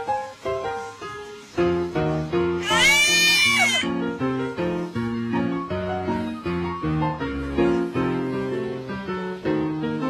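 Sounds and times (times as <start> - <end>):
piano background music: 0.0 - 10.0
high-pitched squeal: 2.6 - 3.9.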